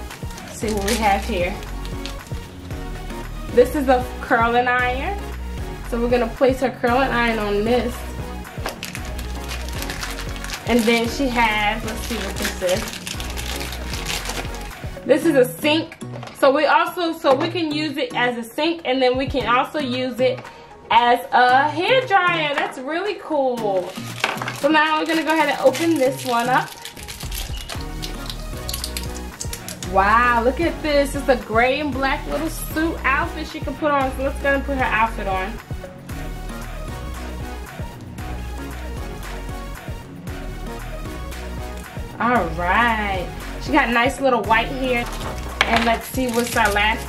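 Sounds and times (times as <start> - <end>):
soft background music: 0.0 - 47.0
plastic clicks and crinkles: 1.6 - 2.3, 8.6 - 11.1, 12.0 - 14.7, 23.8 - 29.9, 45.0 - 46.8.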